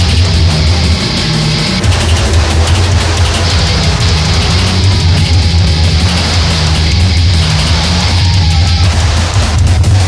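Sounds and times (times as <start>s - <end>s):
electronic grindcore music: 0.0s - 10.0s.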